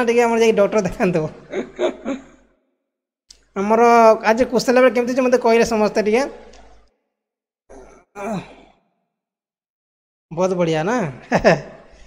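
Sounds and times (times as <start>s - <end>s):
man sighing: 7.7s - 8.8s.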